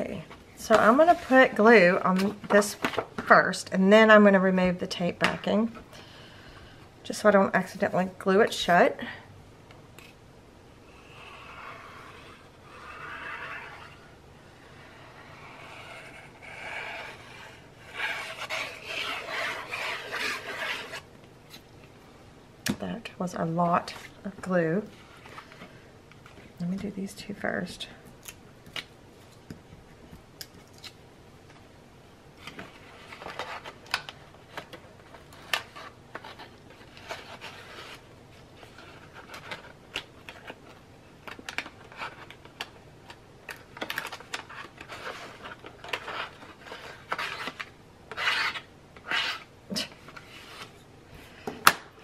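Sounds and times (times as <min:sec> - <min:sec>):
craft knife scraping cardstock: 0:11.1 - 0:14.1, 0:14.8 - 0:21.1, 0:45.9 - 0:50.7.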